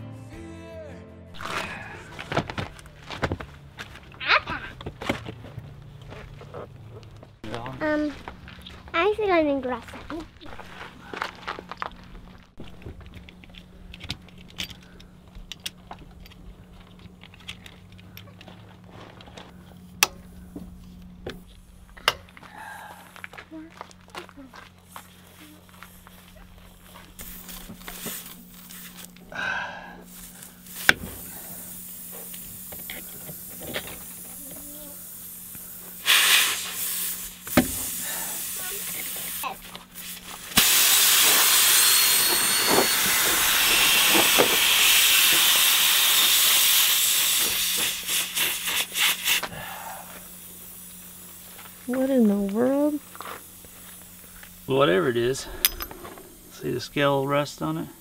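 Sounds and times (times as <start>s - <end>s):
air hissing out of a tire: 24.8s - 52.1s.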